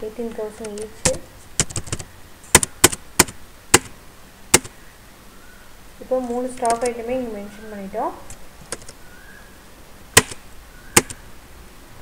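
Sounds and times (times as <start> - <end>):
computer key clicks: 6.6 - 6.9.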